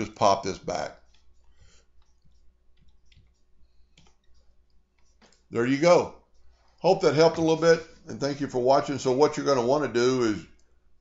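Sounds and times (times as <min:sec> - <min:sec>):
keyboard and mouse clicks: 0:00.9 - 0:05.5.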